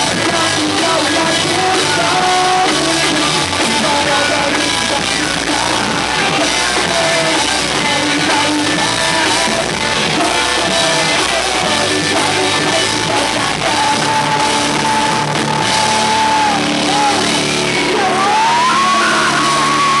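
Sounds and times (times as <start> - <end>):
live rock band playing: 0.0 - 20.0
person singing lead vocal: 0.0 - 20.0.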